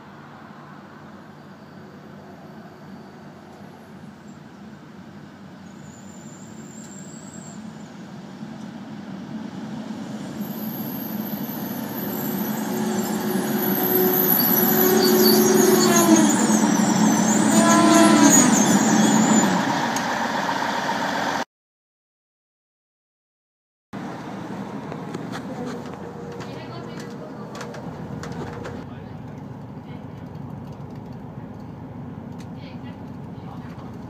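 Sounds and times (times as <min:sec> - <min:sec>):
diesel railcar pulling in: 0:00.0 - 0:21.5, 0:24.0 - 0:34.0
high thin brake squeal: 0:01.3 - 0:04.4, 0:05.6 - 0:07.6, 0:10.3 - 0:20.0.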